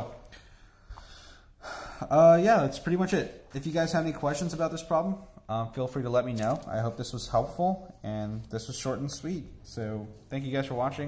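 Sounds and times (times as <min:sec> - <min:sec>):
man breathing in: 0:00.3 - 0:02.1.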